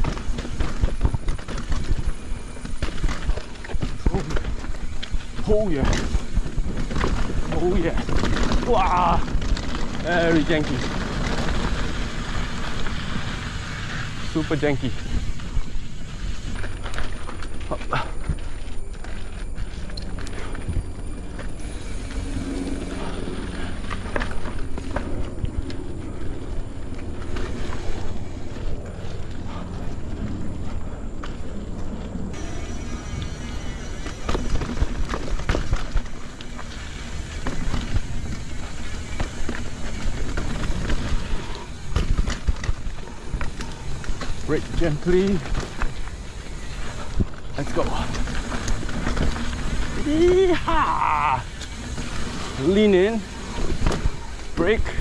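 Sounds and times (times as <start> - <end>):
bike rattling over bumps: 0.0 - 55.0
bike tyres rumbling on dirt trail: 0.0 - 55.0.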